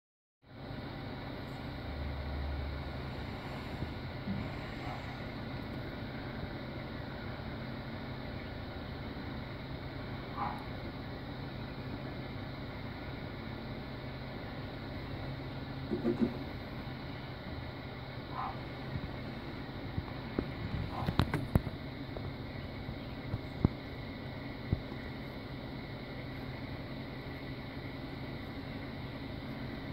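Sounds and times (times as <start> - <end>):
low engine drone: 0.4 - 29.9.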